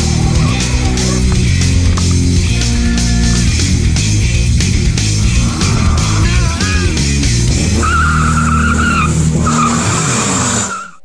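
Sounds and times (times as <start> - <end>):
car engine at high revs: 0.0 - 10.9
car tyres squealing: 5.0 - 11.0.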